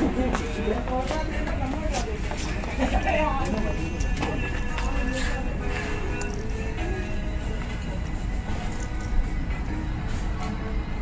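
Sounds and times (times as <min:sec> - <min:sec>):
background music: 0:00.0 - 0:11.0
indistinct voices: 0:00.0 - 0:11.0.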